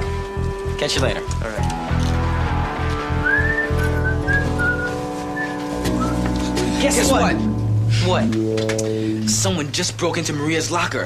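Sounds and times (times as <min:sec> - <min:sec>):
person whistling a short tune: 0:03.2 - 0:06.4.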